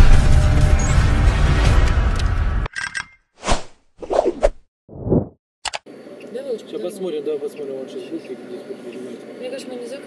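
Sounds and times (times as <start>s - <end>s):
bass-heavy intro music: 0.0s - 2.7s.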